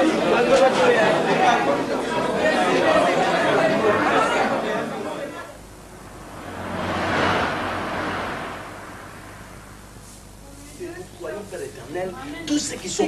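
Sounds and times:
group of people chattering: 0:00.0 - 0:05.6.

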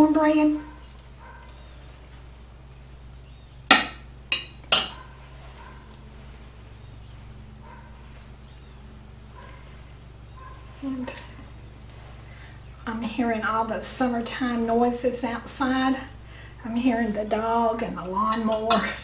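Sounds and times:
dog barking faintly: 0:09.3 - 0:11.5.

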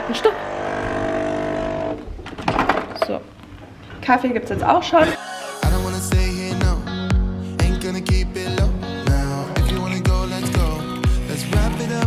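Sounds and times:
coffee machine buzzing hum: 0:00.0 - 0:02.0.

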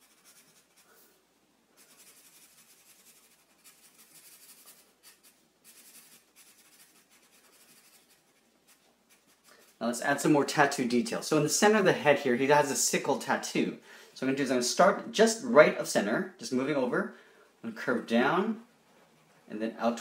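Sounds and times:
marker scratching on paper: 0:00.0 - 0:01.0, 0:01.8 - 0:09.8.

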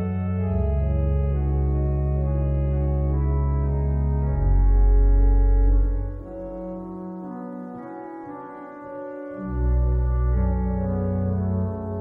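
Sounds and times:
pipe organ sustained chords: 0:00.0 - 0:12.0.

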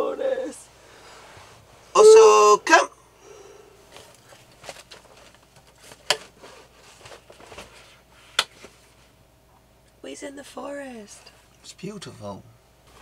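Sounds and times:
bedding rustling: 0:03.8 - 0:09.2.

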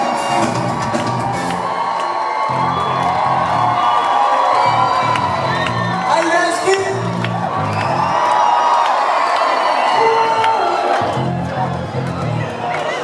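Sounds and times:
rock band playing live: 0:00.0 - 0:01.6
crowd cheering: 0:00.0 - 0:13.0.

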